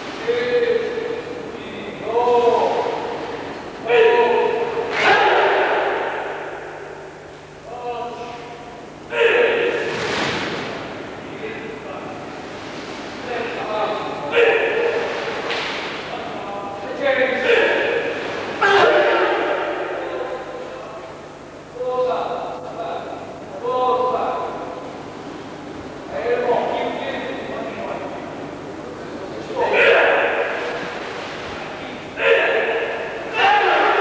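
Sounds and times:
person shouting in echoing hall: 0.2 - 3.2, 3.8 - 9.9, 13.4 - 15.3, 16.2 - 22.6, 29.5 - 31.0, 32.0 - 34.0.

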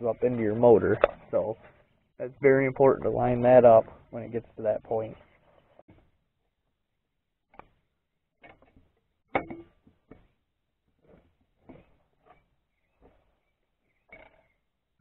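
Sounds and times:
metal knocks and clunks: 8.4 - 10.3.

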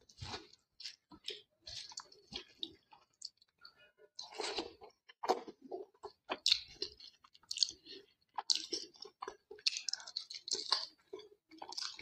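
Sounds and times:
person chewing food: 0.0 - 12.0.

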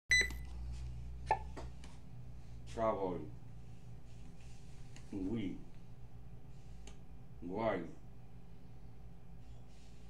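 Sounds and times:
high electronic beep: 0.1 - 0.4
low steady hum: 0.1 - 10.0.

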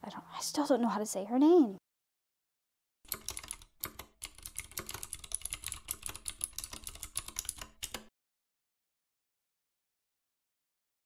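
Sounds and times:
typing on computer keyboard: 3.1 - 8.1.

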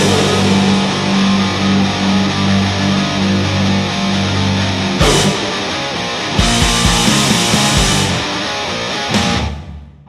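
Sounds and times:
held low notes: 0.0 - 8.2
distorted electric guitars: 0.0 - 10.0.

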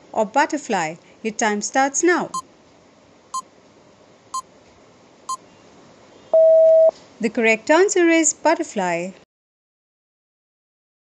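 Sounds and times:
short electronic beeps: 6.3 - 6.9.

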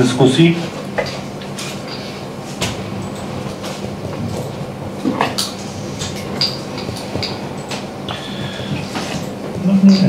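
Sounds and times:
steady low room hum: 0.0 - 10.0.

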